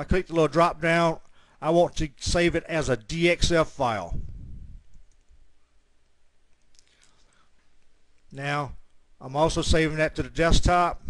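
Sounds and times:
man's voice: 8.3 - 11.0.

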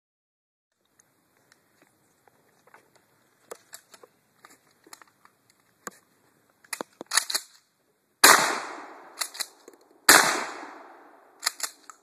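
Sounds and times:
shotgun shots echoing: 8.2 - 11.8.

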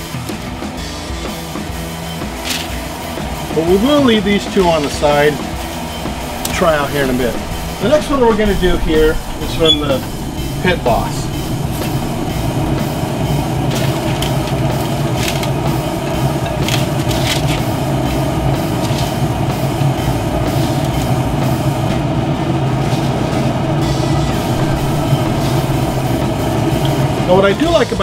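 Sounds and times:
low mechanical hum: 1.6 - 28.0.

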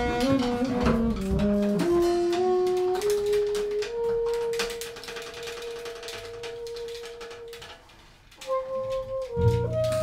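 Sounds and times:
drums tapped with sticks: 8.8 - 10.0.

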